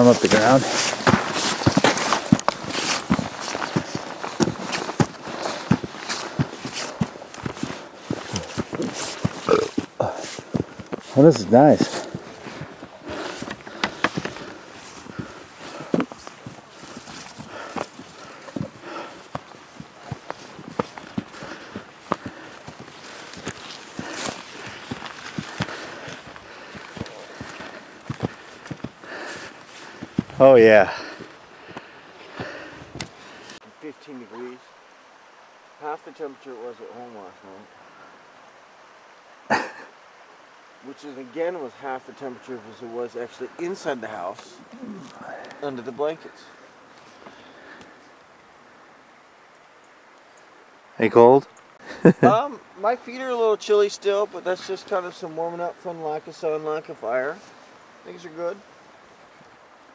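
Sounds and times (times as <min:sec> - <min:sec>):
stalks brushing trouser legs: 0:00.0 - 0:31.3
footsteps through dry grass: 0:00.0 - 0:33.6.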